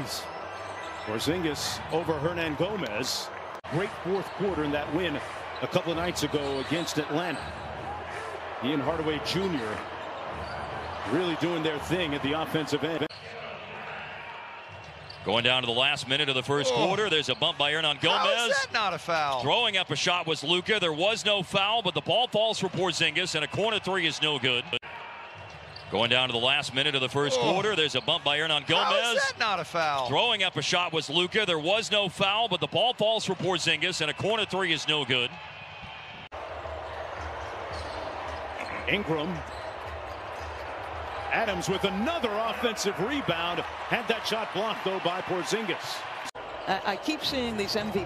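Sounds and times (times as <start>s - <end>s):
court and crowd noise: 0.0s - 48.0s
commentator speaking: 15.3s - 24.7s, 26.0s - 35.3s.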